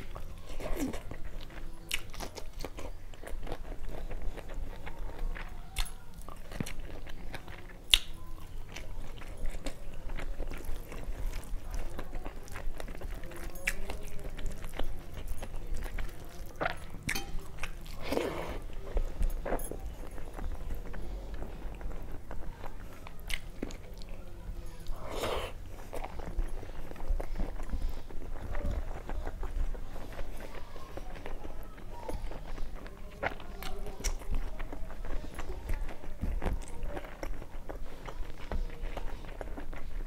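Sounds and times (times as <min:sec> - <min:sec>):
wet chewing with lip-smacks: 0:00.0 - 0:40.0.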